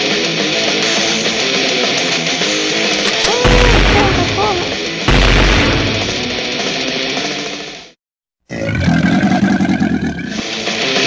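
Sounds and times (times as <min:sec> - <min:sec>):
music: 0:00.0 - 0:08.0, 0:10.3 - 0:11.0
loud sound: 0:02.9 - 0:06.5
creature roar: 0:08.5 - 0:10.5.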